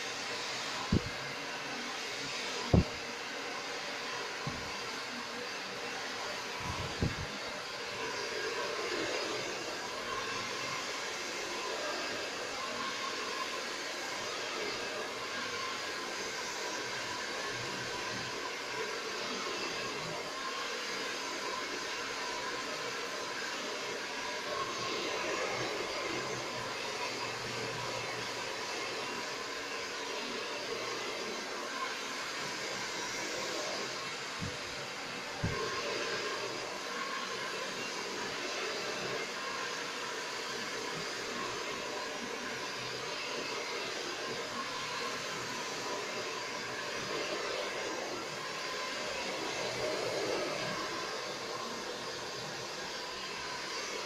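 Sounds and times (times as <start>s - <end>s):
hair dryer running: 0.0s - 54.0s.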